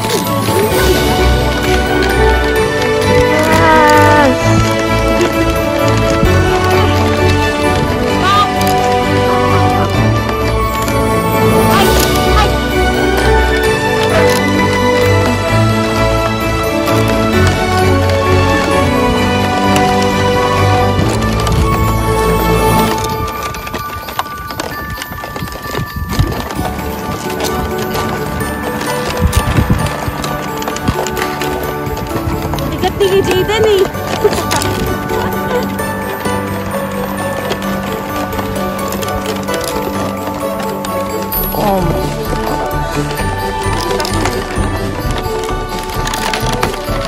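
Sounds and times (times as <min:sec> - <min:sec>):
background music sustained notes: 0:00.0 - 0:47.0
wooden dog sled knocking and rattling: 0:00.0 - 0:47.0.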